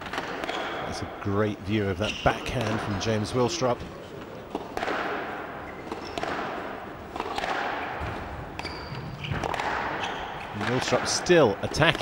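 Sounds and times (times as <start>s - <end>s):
squash ball hitting rackets and walls: 0.0s - 3.4s, 4.3s - 12.0s.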